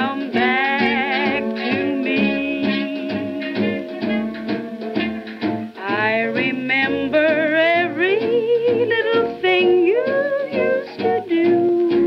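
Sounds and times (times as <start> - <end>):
swing band recording: 0.0 - 12.0.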